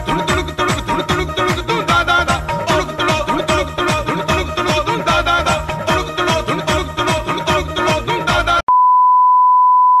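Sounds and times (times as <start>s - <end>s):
music with pulsing beat: 0.0s - 8.6s.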